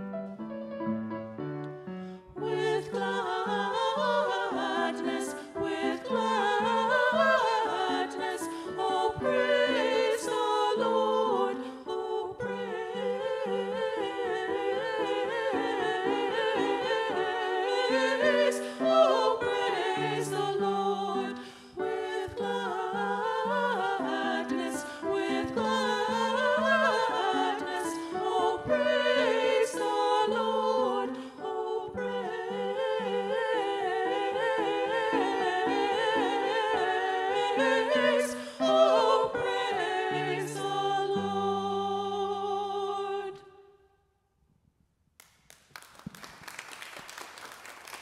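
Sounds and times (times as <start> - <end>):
piano accompaniment: 0.0 - 32.1
women singing: 2.4 - 43.7.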